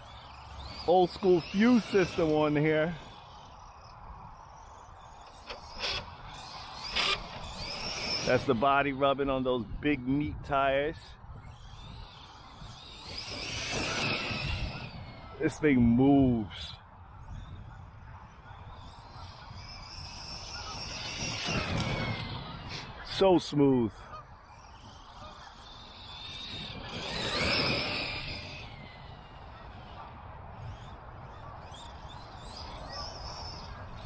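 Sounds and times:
electric toy truck motor whine: 0:00.0 - 0:09.6, 0:11.2 - 0:15.6, 0:17.2 - 0:23.2, 0:24.0 - 0:34.0.

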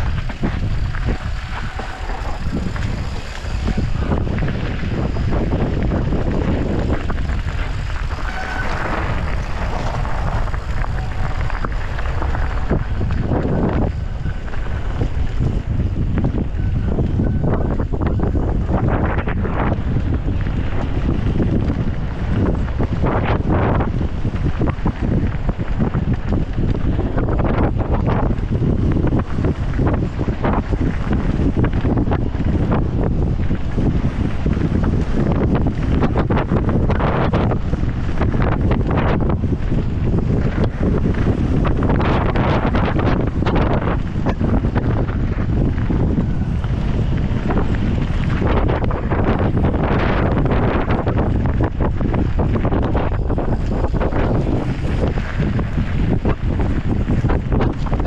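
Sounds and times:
bike rattling over stones: 0:00.0 - 0:58.0
tyres crunching on gravel: 0:00.0 - 0:58.0
wind buffeting microphone: 0:00.0 - 0:58.0.

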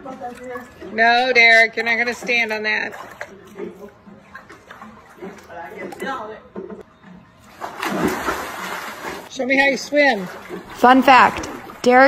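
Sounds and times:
water sloshing: 0:00.0 - 0:12.0
splash into pool: 0:07.5 - 0:09.3.

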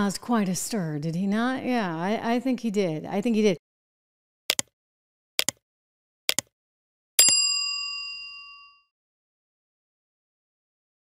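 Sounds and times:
bell ding: 0:07.2 - 0:08.9.

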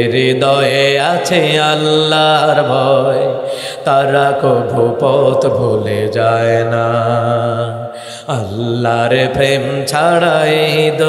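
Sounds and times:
man singing a long note: 0:00.0 - 0:11.0.

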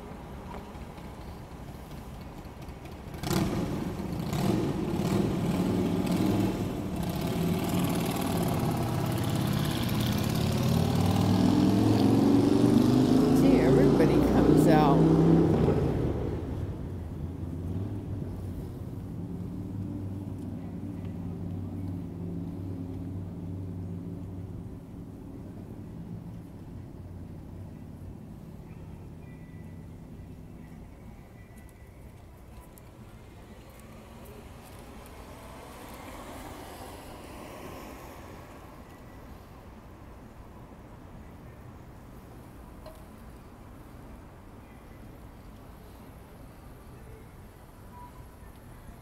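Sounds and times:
low traffic hum: 0:00.0 - 0:49.0
vehicle engine accelerating: 0:02.6 - 0:24.7, 0:33.6 - 0:38.8.

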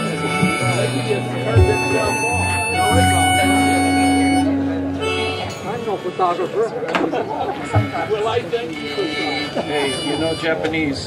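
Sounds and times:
acoustic guitar: 0:00.0 - 0:10.7
people talking and laughing: 0:00.0 - 0:11.0.

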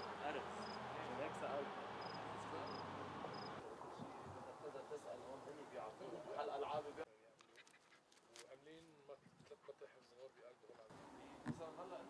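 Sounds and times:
cricket chirping: 0:00.0 - 0:01.2, 0:02.0 - 0:03.6
faint outdoor background: 0:00.0 - 0:12.0.

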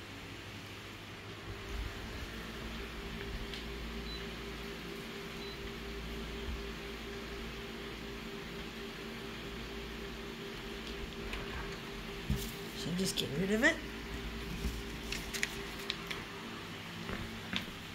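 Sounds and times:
photocopier running: 0:00.3 - 0:17.9.

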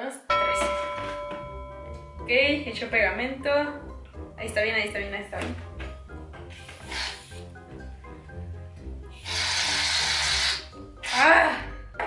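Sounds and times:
aerosol can spraying foam: 0:06.5 - 0:07.4, 0:09.2 - 0:11.3.

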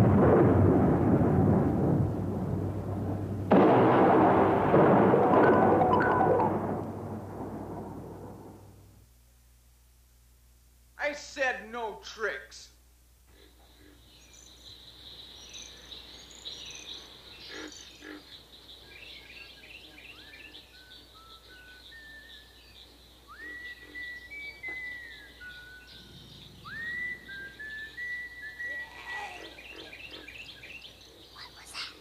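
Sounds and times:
swooping whistle-like notes: 0:05.3 - 0:06.7, 0:23.3 - 0:29.4
birds chirping and calling: 0:13.6 - 0:32.0.

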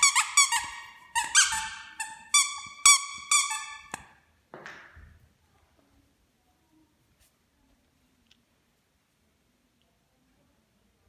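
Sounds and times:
squeaky dog toy squeaking: 0:00.0 - 0:04.1.

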